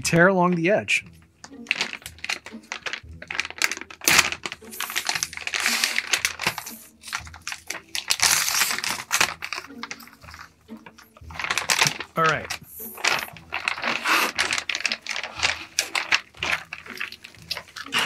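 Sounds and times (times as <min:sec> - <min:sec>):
foil bag crinkling and tearing: 0:01.6 - 0:18.0.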